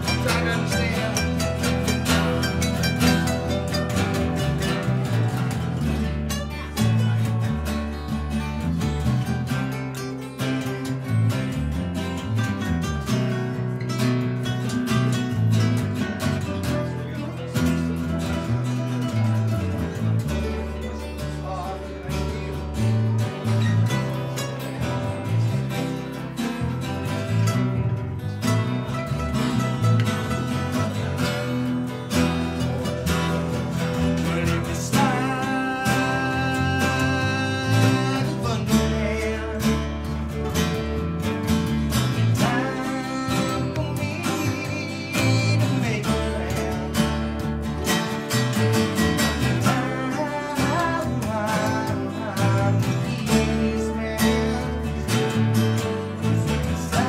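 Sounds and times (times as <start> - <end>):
acoustic guitars strumming chords: 0.0 - 57.0
electric guitar melodic lines: 0.0 - 57.0.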